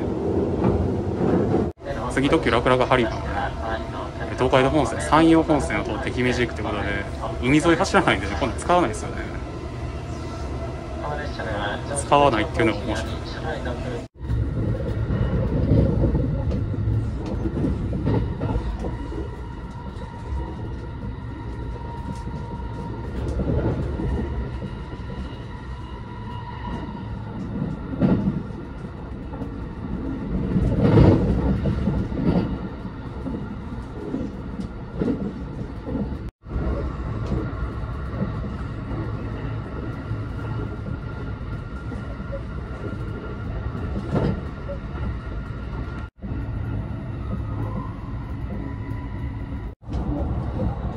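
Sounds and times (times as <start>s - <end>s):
train wheels rumbling on rail: 0.0s - 50.9s.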